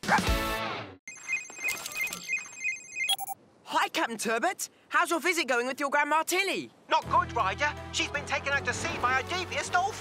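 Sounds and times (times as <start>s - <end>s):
electronic ringtone of high beeps: 1.1s - 3.4s.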